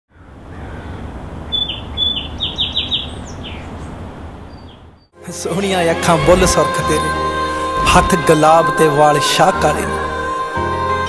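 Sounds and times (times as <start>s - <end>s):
birds chirping: 0.1s - 5.2s.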